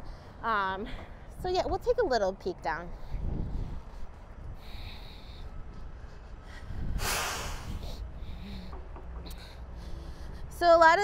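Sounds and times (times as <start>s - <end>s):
steady low rumble: 0.0s - 11.0s
person exhaling sharply: 7.0s - 8.6s.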